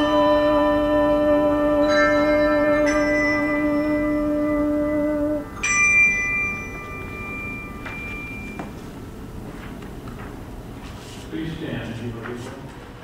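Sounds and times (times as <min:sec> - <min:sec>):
handbells ringing a chord: 0:00.0 - 0:09.4
high handbell struck: 0:01.3 - 0:09.6.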